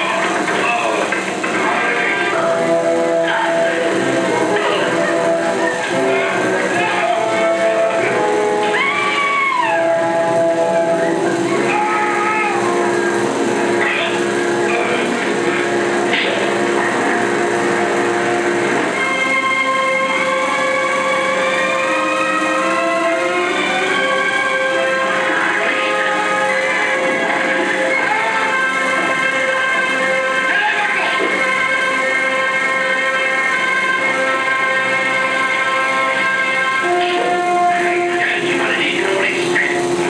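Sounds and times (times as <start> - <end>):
film score with held chords: 0.0 - 40.0
sliding high notes: 0.0 - 40.0.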